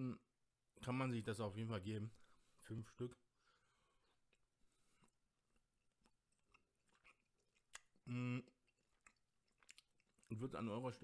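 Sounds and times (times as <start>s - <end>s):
faint chewing: 4.0s - 10.6s.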